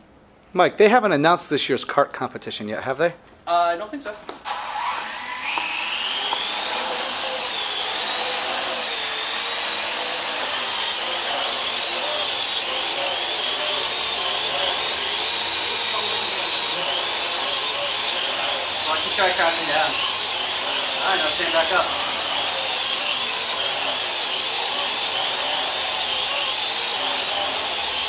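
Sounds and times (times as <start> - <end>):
drone rotors whining: 4.4 - 28.0.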